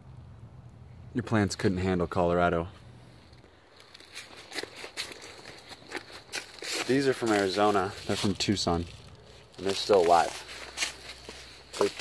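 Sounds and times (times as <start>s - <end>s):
crunching footsteps: 2.8s - 12.0s.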